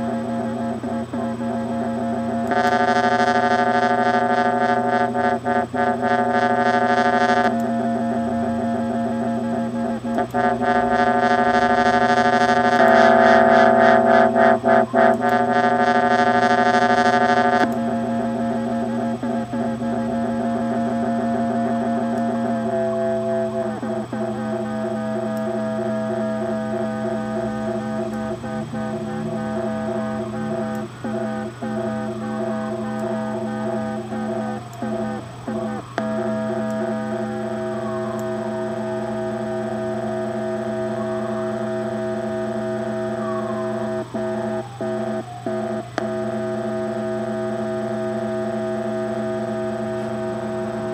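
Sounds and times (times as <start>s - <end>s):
buzzy synthesizer drone: 0.0s - 50.9s.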